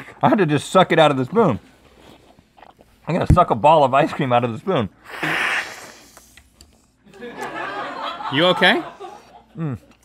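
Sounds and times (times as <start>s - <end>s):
man slurping ice cream: 5.0s - 6.5s.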